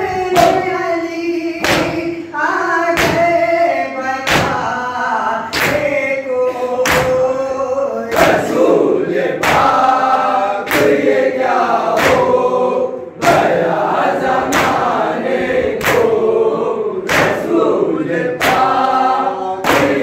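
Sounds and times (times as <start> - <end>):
men chanting in unison: 0.0 - 20.0.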